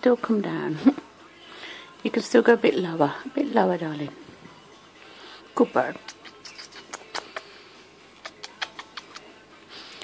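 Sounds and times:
parrot claws and beak clicking: 6.1 - 7.5, 8.2 - 9.3.

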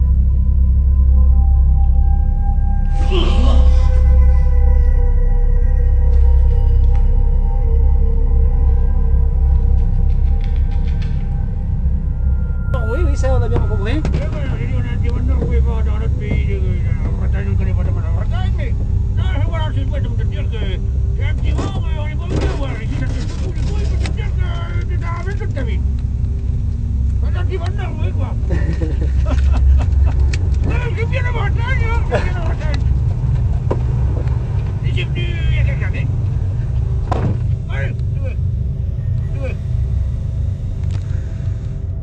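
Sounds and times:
steady low rumble: 0.0 - 42.0
people talking: 3.0 - 3.8, 12.8 - 25.8, 27.2 - 30.0, 30.6 - 33.0, 34.8 - 36.1, 37.6 - 38.4, 39.2 - 39.6.

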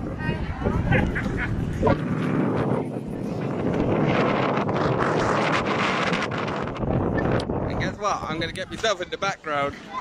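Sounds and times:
voices of passers-by: 0.0 - 10.0
wind buffeting microphone: 0.0 - 10.0.

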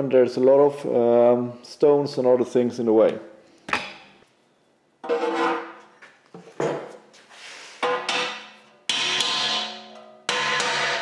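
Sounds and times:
hammer striking steel plate: 7.8 - 11.0.

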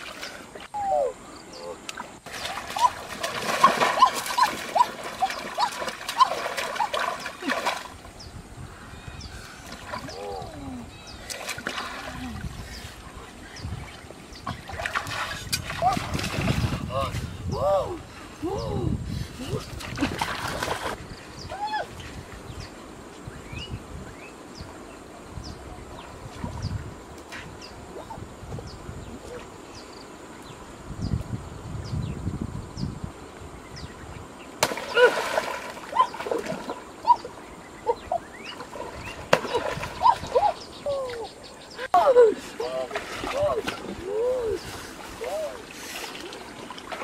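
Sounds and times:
water splashing in a stream: 0.0 - 0.8, 1.8 - 8.2, 9.5 - 17.0, 19.5 - 21.0, 34.5 - 41.4, 42.5 - 47.0.

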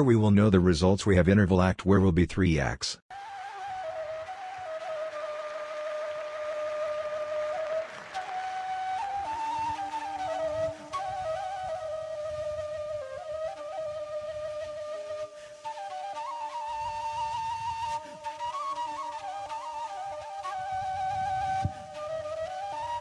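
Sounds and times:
flute playing lively melody: 3.1 - 23.0.

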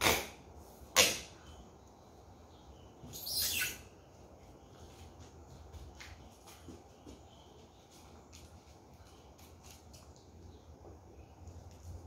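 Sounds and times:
tape unrolling screech: 3.1 - 3.8.

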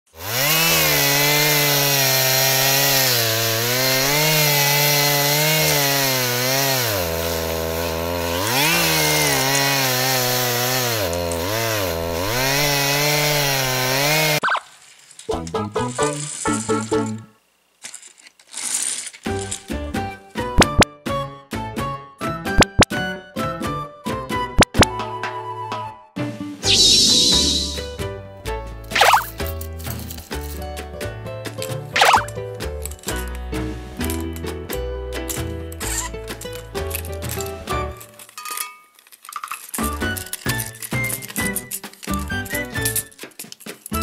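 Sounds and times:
chainsaw revving: 0.1 - 14.5.

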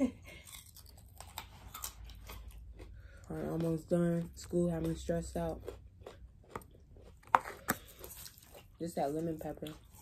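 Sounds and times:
eating and food handling: 0.0 - 10.0.

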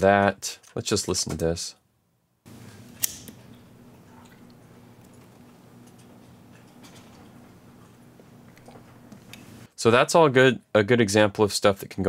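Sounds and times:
low steady hum: 2.5 - 9.7.

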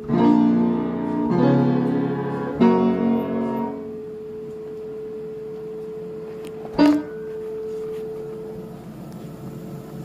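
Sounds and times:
piano tone: 0.0 - 8.9.

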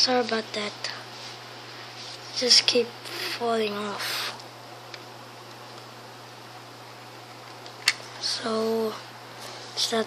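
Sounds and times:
faint hum and hiss: 0.0 - 10.0.

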